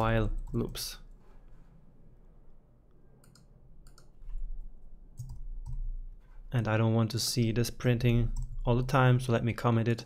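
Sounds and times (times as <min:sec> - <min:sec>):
computer keyboard keystrokes: 0:03.2 - 0:04.2, 0:05.2 - 0:05.9.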